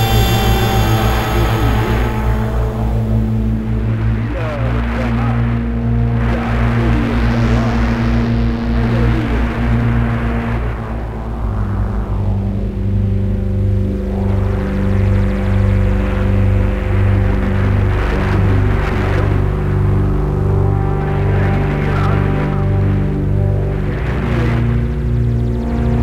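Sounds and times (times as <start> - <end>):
hissing noise wash: 0.0 - 13.2
ambient synthesizer drone: 0.0 - 26.0.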